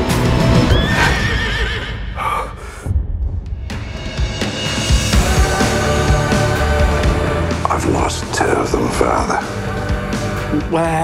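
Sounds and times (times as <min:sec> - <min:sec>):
film score music: 0:00.0 - 0:11.0
horse whinnying: 0:00.6 - 0:02.1.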